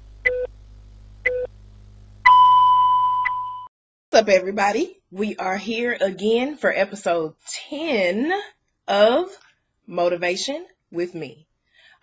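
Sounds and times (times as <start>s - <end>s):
long steady beep: 2.3s - 3.7s
short beeps: 2.3s - 3.7s.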